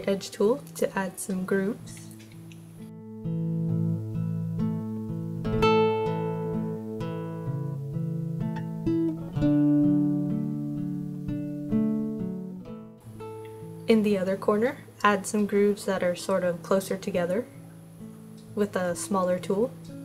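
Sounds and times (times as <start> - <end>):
woman speaking: 0.0 - 2.2, 13.9 - 17.5, 18.6 - 19.8
acoustic guitar tune: 0.0 - 20.0.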